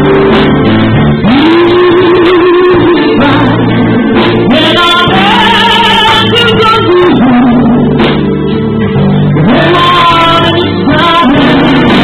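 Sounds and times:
live band playing: 0:00.0 - 0:12.0
woman singing into microphone: 0:01.2 - 0:08.1, 0:09.4 - 0:12.0.

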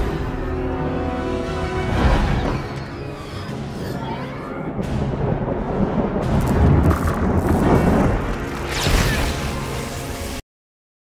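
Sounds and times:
orchestral music: 0:00.0 - 0:10.4
deep thunder booms: 0:04.7 - 0:08.6.

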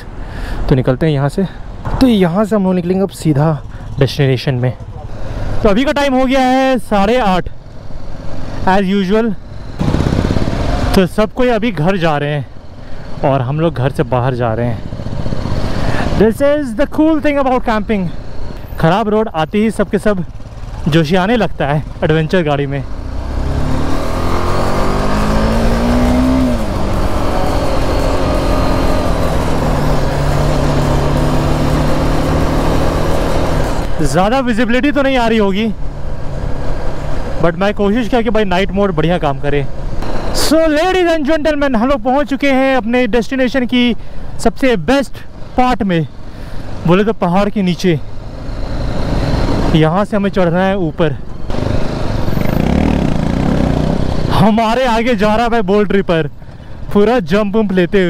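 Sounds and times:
wind and road noise: 0:00.0 - 0:58.0
motorcycle engine accelerating: 0:07.8 - 0:11.6, 0:13.1 - 0:35.2, 0:51.4 - 0:55.4.

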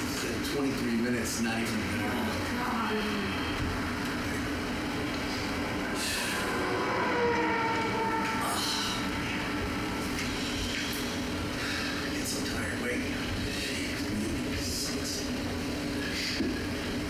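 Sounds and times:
faint whine sliding down in pitch: 0:05.2 - 0:11.4.

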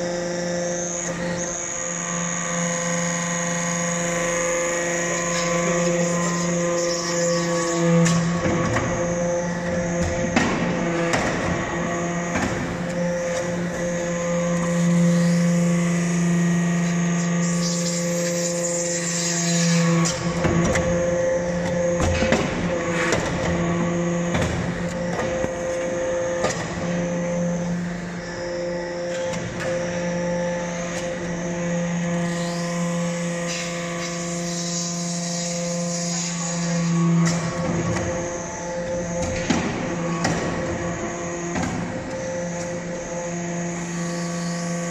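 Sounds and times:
hydraulic power unit hum: 0:00.0 - 0:44.9.

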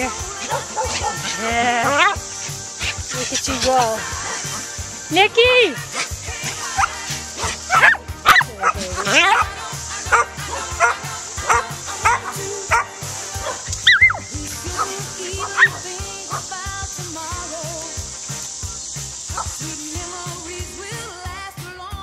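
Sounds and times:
dogs barking and yipping: 0:00.0 - 0:05.0, 0:05.7 - 0:16.8, 0:17.4 - 0:19.6
song playing: 0:00.0 - 0:22.0.

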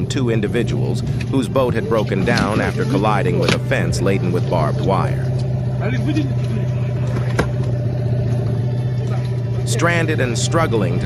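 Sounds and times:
outboard motor running: 0:00.0 - 0:11.0.

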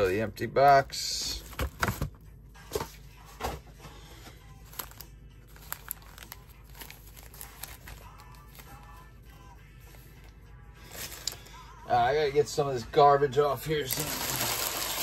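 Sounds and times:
faint background music: 0:00.0 - 0:15.0
foil packs crinkling: 0:04.6 - 0:09.0, 0:10.8 - 0:11.5, 0:13.8 - 0:15.0.

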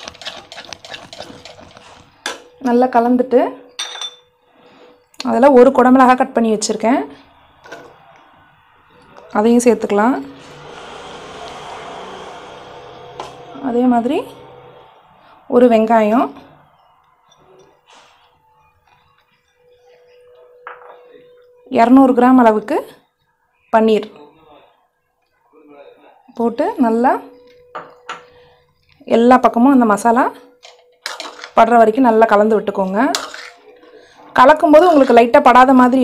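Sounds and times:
metal spoon clinking ceramic bowl: 0:03.7 - 0:04.3, 0:30.6 - 0:31.6, 0:33.1 - 0:33.6.

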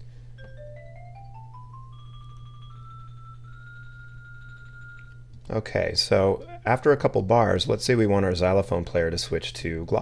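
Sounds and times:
steady low hum: 0:00.0 - 0:10.0
xylophone notes: 0:00.4 - 0:05.2.

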